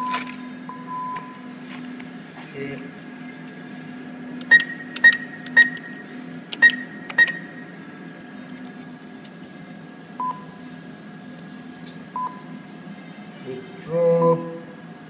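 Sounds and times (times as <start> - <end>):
steady hum: 0.0 - 15.0
keypad beeps: 4.5 - 6.0, 6.6 - 7.5
lower-pitched beep: 10.2 - 10.6.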